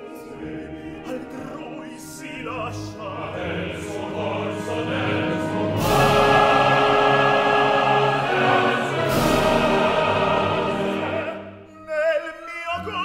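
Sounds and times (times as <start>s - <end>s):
opera orchestra and chorus: 0.0s - 13.0s.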